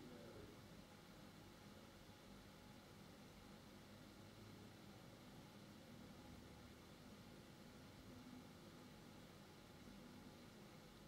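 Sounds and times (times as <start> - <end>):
faint low hum and hiss: 0.0 - 11.0.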